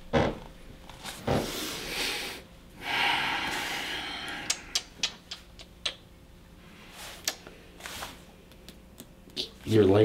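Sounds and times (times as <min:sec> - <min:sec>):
person exhaling loudly: 0:01.8 - 0:04.9.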